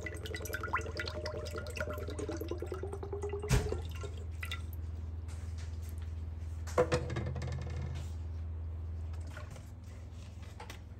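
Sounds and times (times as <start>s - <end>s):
liquid pouring into a metal pot: 0.0s - 4.8s.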